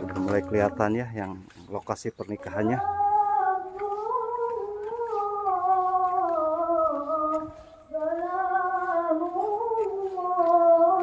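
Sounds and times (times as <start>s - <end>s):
high voice chanting recitation: 0.0s - 11.0s.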